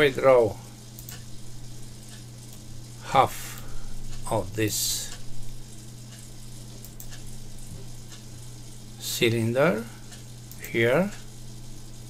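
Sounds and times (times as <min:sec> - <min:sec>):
low hum and hiss: 0:00.0 - 0:12.0
computer mouse clicks: 0:01.0 - 0:01.3, 0:06.8 - 0:07.2.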